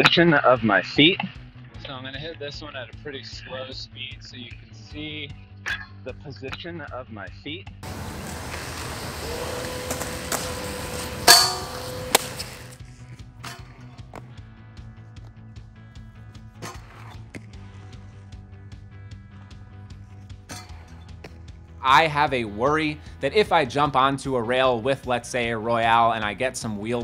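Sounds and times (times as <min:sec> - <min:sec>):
background music: 0:00.0 - 0:27.0
skates clacking on metal rail: 0:07.8 - 0:14.3, 0:16.5 - 0:17.9, 0:20.5 - 0:21.4
skate wheels rolling on concrete: 0:07.8 - 0:23.9.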